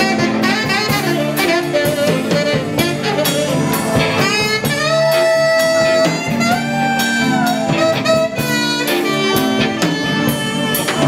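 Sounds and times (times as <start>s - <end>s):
band with electric guitar: 0.0s - 11.0s
tenor saxophone jazz solo: 0.0s - 11.0s.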